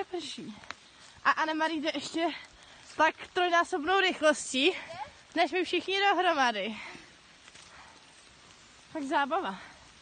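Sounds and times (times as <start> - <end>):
faint outdoor hiss: 0.0 - 10.0.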